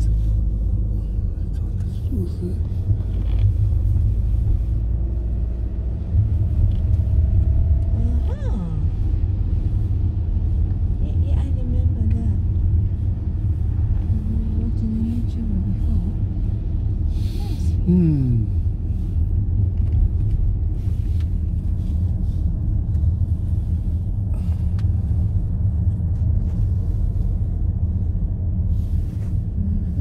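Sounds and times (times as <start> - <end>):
car engine and road noise: 0.0 - 30.0.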